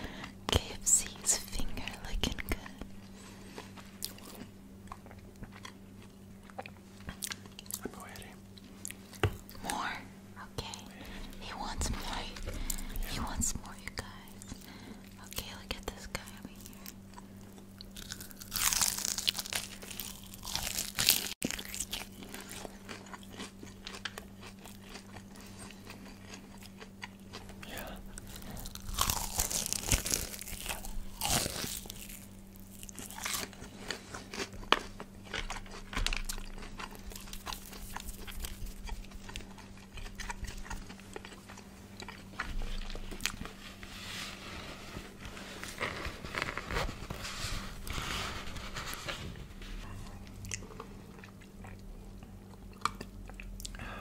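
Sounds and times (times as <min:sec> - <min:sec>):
faint steady hum: 0:00.0 - 0:54.0
crunchy food being chewed: 0:01.3 - 0:10.0, 0:10.7 - 0:53.8.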